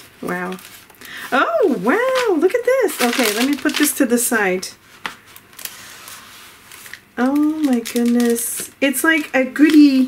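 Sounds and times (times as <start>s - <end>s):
paper rustling: 0.0s - 4.2s, 4.8s - 10.0s.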